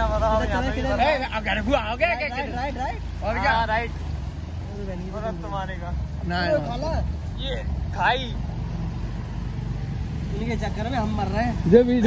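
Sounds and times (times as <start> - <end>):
riding through water: 0.0 - 12.0.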